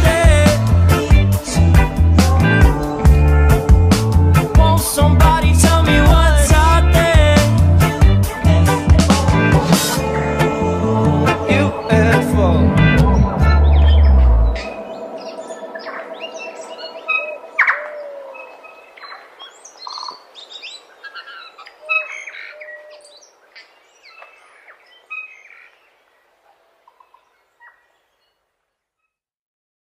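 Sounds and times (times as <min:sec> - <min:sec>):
music ending with low hit: 0:00.0 - 0:15.0
birds chirping: 0:00.0 - 0:28.4.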